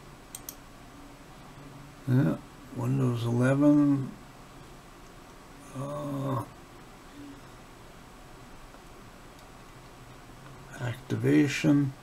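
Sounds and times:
man humming: 5.6s - 6.5s.

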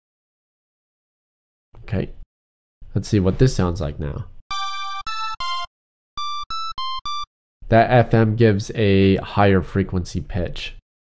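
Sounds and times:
high-pitched synthesizer notes: 4.5s - 7.3s.

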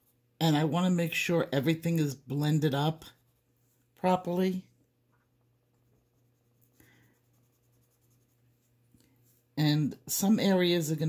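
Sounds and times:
pencil scratching on paper: 5.8s - 8.7s.

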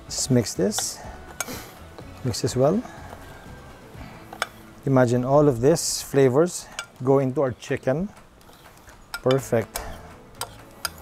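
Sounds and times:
spoon stirring dry flour: 0.0s - 3.5s
faint guitar music: 0.0s - 11.0s.

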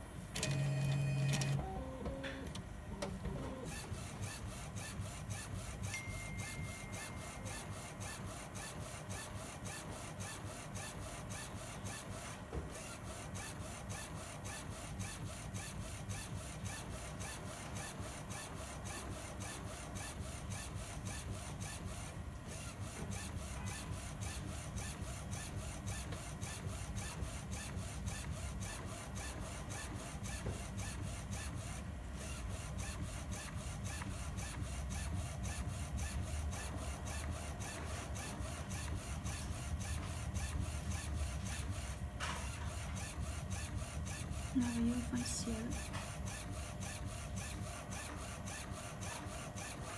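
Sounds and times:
printer carriage mechanical rasp: 0.4s - 49.9s.

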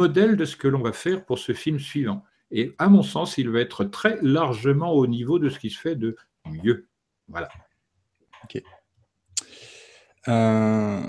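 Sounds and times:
person speaking: 0.0s - 7.6s, 8.4s - 11.0s
mouth click: 9.4s - 9.6s
breathy in-breath: 9.4s - 10.2s.

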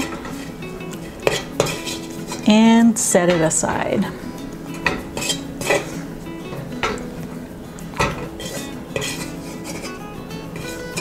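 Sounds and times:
metal spoon scraping a wok: 0.0s - 2.6s, 4.7s - 6.1s, 8.0s - 11.0s.

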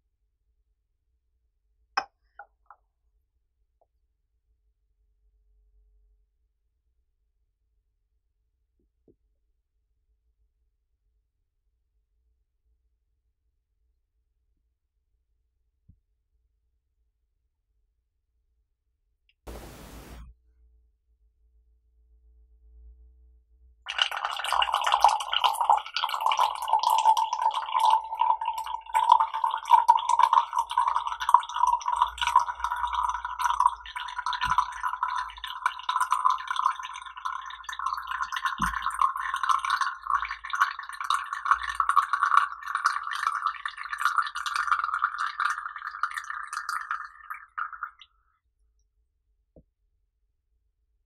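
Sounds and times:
tea pouring into glass cup: 23.9s - 48.0s.

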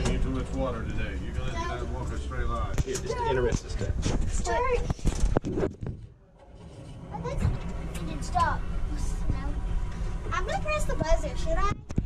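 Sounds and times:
low rumble: 3.8s - 12.0s.

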